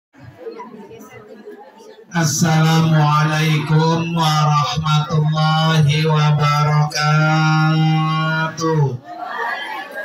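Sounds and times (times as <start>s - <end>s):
people chattering: 0.2s - 10.0s.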